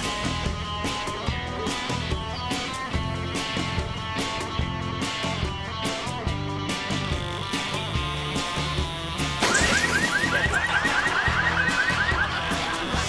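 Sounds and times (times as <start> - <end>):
comedy background music: 0.0 - 13.0
car alarm whooping: 9.5 - 13.0.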